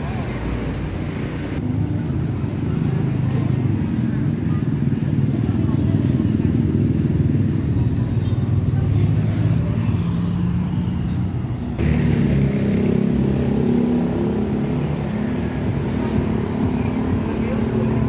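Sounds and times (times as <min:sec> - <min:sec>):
scooters and cars passing: 0:00.0 - 0:18.0
nearby engine: 0:11.8 - 0:18.0.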